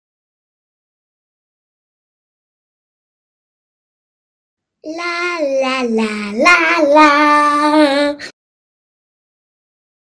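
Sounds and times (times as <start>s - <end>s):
person singing la la la: 4.9s - 8.4s.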